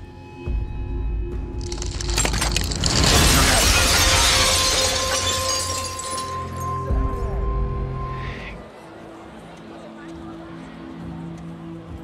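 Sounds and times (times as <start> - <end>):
window glass shattering: 1.6 - 6.9.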